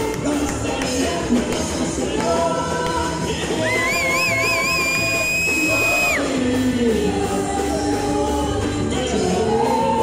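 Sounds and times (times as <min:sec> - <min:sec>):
live band music over speakers: 0:00.0 - 0:10.0.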